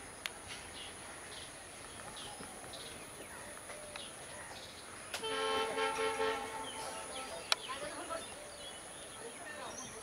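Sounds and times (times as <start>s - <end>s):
horn sounding: 5.2s - 7.2s.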